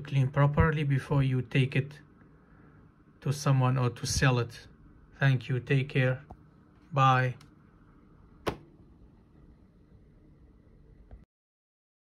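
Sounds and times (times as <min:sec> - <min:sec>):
laptop lid closing click: 0:08.4 - 0:08.7.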